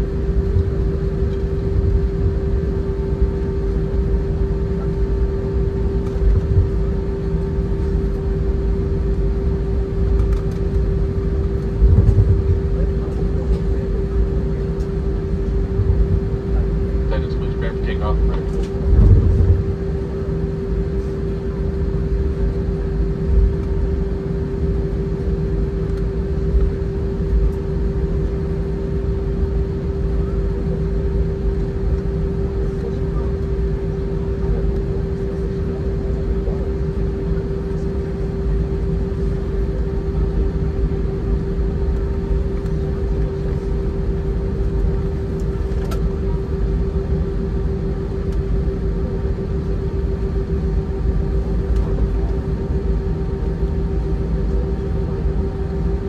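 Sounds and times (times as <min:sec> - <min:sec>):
aircraft engines idling: 0:00.0 - 0:56.0
constant cabin hum: 0:00.0 - 0:56.0
heavy low bumps: 0:18.7 - 0:19.9.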